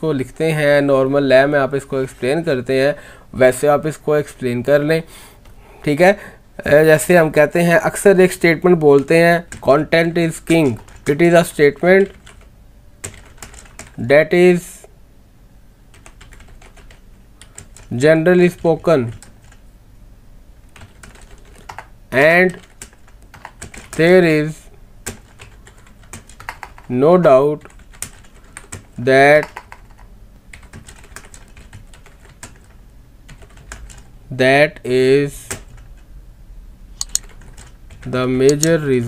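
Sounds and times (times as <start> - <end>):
computer keyboard typing: 8.8 - 14.0, 15.9 - 19.6, 20.7 - 24.0, 25.0 - 26.9, 27.6 - 34.1, 35.5 - 36.0, 37.0 - 38.8
keyboard key clicks: 37.0 - 37.4, 38.4 - 38.8.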